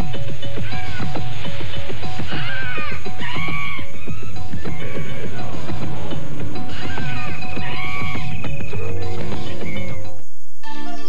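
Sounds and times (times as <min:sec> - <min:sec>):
dense low music layer: 0:00.0 - 0:10.6.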